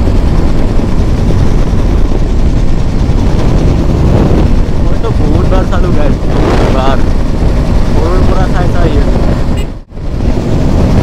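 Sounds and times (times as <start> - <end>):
motorcycle engine running: 0.0 - 11.0
wind buffeting microphone: 0.0 - 11.0.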